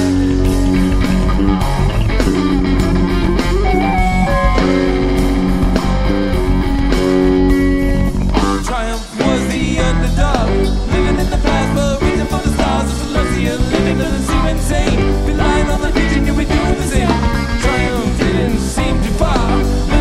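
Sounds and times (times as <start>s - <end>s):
rock band jamming: 0.0s - 20.0s.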